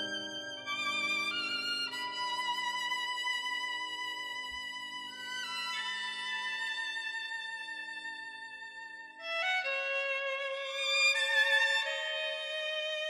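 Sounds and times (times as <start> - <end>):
violin playing slow melody: 0.0 - 13.0.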